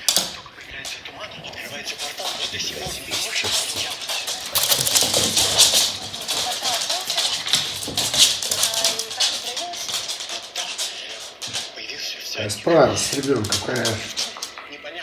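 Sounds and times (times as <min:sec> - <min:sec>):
dog claws scratching on laminate floor: 0:00.0 - 0:14.6.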